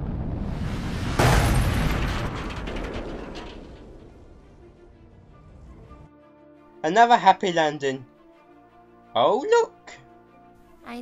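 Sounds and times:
loud crash: 0.0 - 6.1
background music: 4.3 - 11.0.

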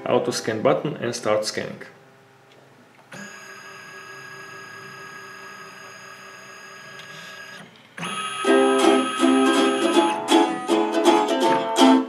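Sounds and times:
scanner motor whine: 3.2 - 10.8.

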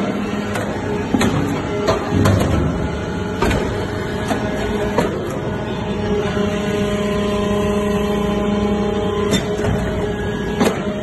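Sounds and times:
hydraulic press running: 0.0 - 11.0.

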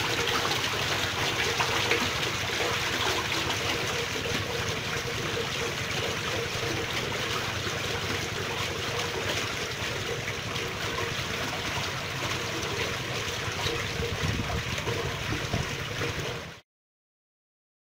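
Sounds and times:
water flowing in a stream: 0.0 - 16.6.

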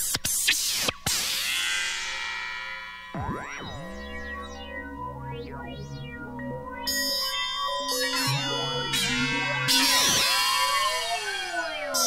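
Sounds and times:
electronic synthesizer music: 3.1 - 12.0.

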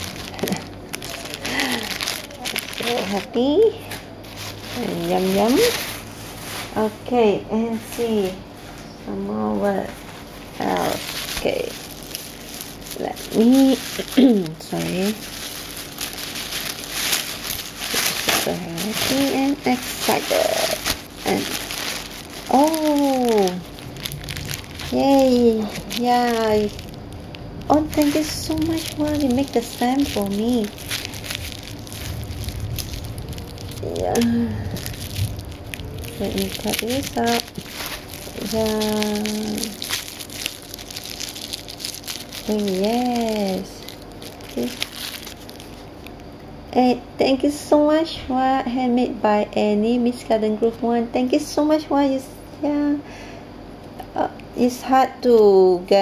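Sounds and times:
paper wrapping rustling: 0.0 - 7.2, 9.7 - 46.2.

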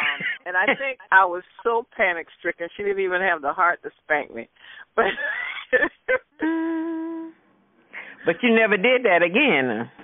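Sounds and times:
woman humming: 6.4 - 7.4.

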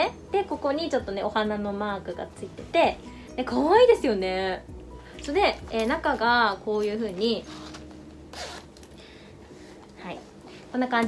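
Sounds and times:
metal zipper opening: 7.4 - 8.8.

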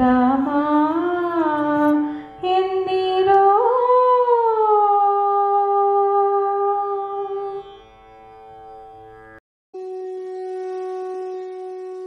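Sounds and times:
woman singing a long note: 0.0 - 7.6.

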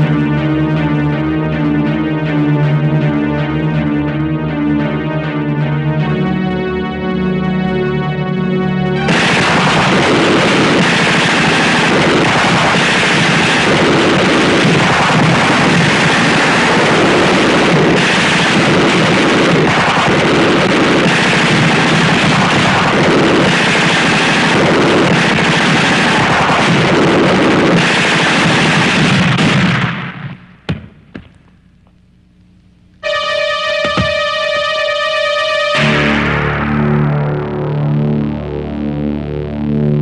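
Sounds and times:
automatic gunfire: 9.0 - 31.2.

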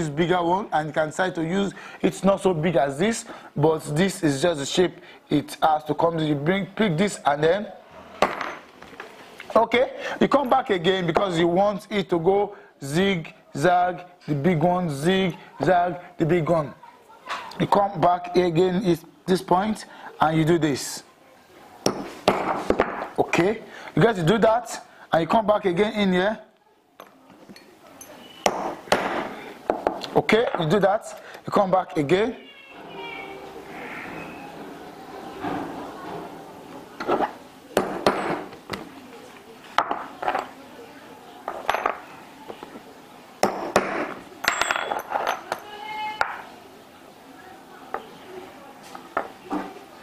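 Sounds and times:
steel punches clinking on wood: 28.5 - 29.9, 43.4 - 45.6.

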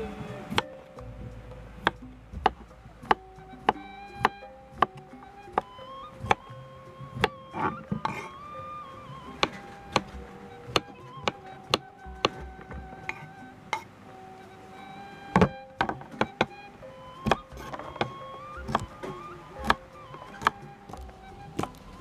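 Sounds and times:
gentle background music: 0.0 - 22.0.

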